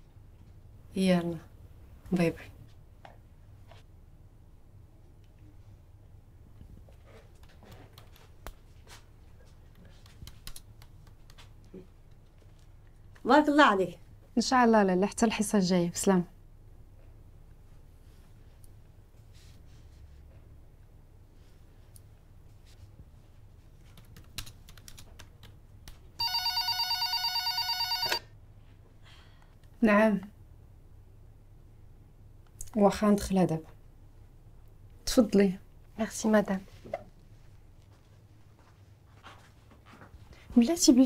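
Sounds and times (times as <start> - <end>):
low steady room hum: 0.0 - 41.0
electric doorbell ringing: 26.2 - 28.2.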